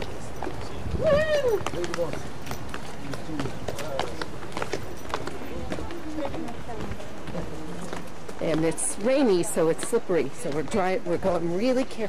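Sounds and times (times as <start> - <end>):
footsteps on wet stone: 0.0 - 12.0
people talking: 3.0 - 12.0.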